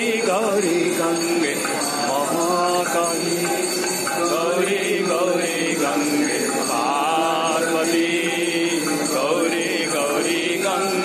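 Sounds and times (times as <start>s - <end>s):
voices singing devotional chant: 0.0s - 11.0s.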